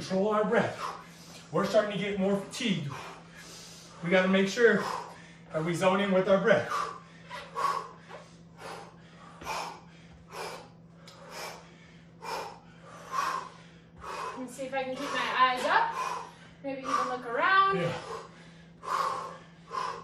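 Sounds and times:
forceful breathing: 0:00.0 - 0:20.0.

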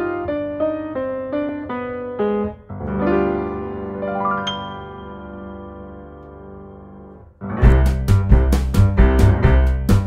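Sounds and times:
piano-like keyboard melody: 0:00.0 - 0:10.0.

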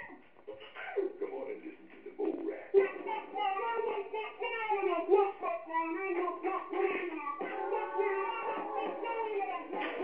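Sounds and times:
child singing: 0:02.4 - 0:10.0.

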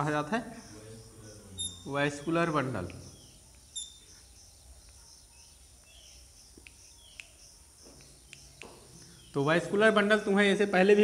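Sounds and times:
high background whine: 0:00.0 - 0:11.0.

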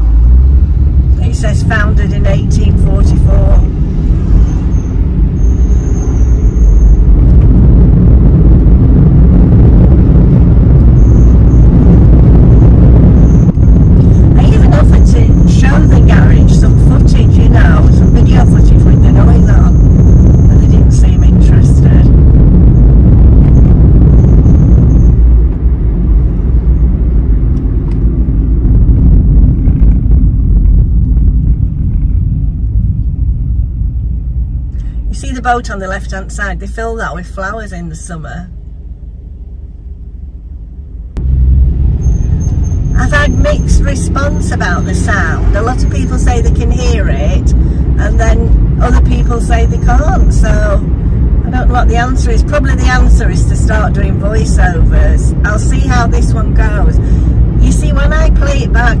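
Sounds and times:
road and engine rumble in car: 0:00.0 - 0:59.0.

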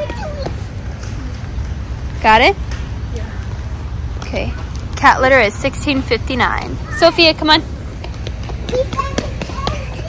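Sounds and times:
store background rumble: 0:00.0 - 0:10.0.

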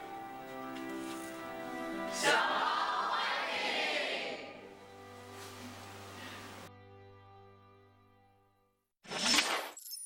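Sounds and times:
sustained music: 0:00.0 - 0:08.4
shattering glittery sound effect: 0:09.1 - 0:10.0.

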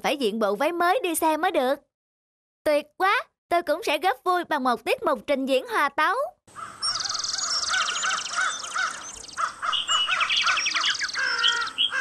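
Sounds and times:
rapid high bird trills: 0:06.5 - 0:12.0
rising-and-falling bird call: 0:06.6 - 0:12.0
short high bird chirps: 0:06.8 - 0:12.0.

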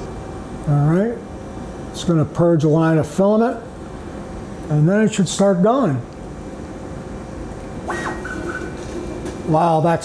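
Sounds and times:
printer fans whirring: 0:00.0 - 0:10.0
stepper motors whining: 0:07.8 - 0:09.1.

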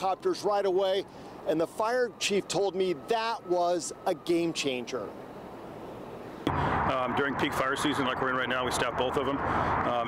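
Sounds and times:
man speaking outdoors: 0:00.0 - 0:10.0.

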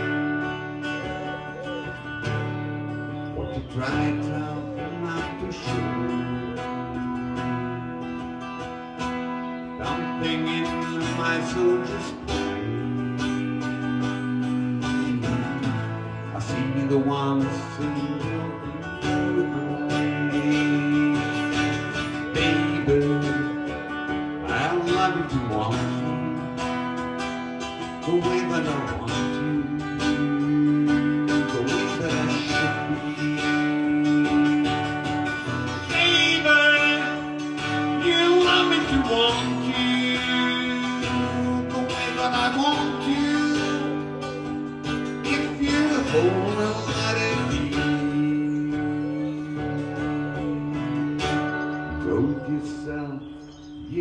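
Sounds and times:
acoustic guitar strumming: 0:00.0 - 0:54.0.

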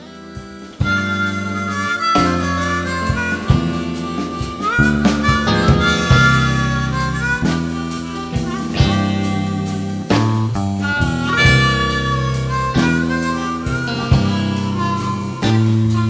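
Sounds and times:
blues band playing: 0:00.0 - 0:16.0
blues harmonica: 0:00.0 - 0:16.0.

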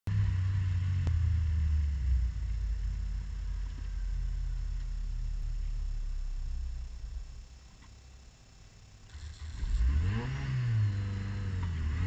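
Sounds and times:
race car engine idling: 0:00.3 - 0:07.7.

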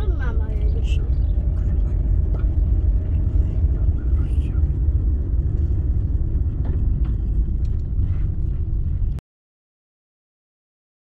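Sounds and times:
car engine and tyres rumbling: 0:00.0 - 0:09.2.

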